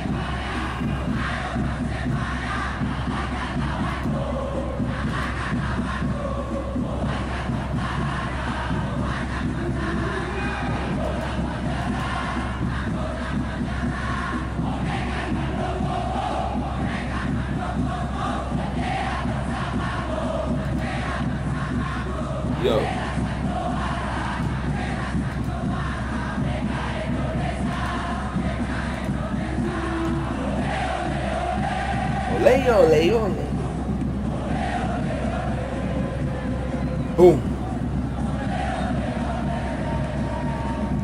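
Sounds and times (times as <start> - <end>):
crowd chanting and singing: 0.0 - 41.0.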